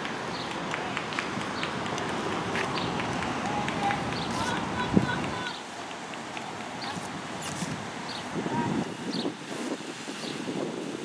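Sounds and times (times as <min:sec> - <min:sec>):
faint distant voices: 0:00.0 - 0:09.3
city background noise: 0:00.0 - 0:11.0
footsteps outdoors: 0:00.0 - 0:11.0.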